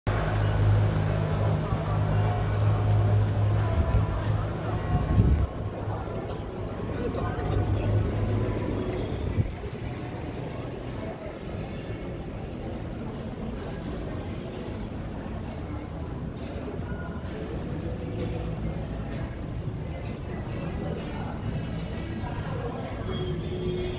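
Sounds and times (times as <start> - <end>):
people talking: 0.1 - 23.9
traffic engine hum: 0.1 - 23.9.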